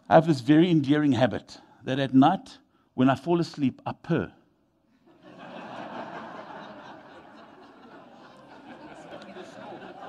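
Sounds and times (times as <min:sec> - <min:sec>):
congregation laughing and murmuring: 0:05.0 - 0:10.0.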